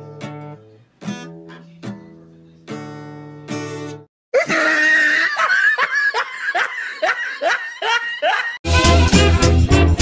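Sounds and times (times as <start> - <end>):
guitar strumming: 0.0 - 4.0
person laughing: 4.3 - 8.6.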